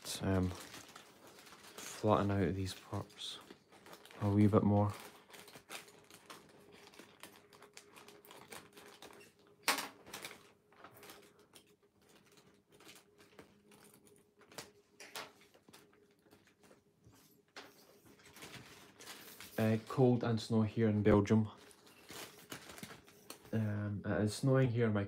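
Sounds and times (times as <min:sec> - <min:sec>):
paper rustling and crackling: 0:00.0 - 0:23.6.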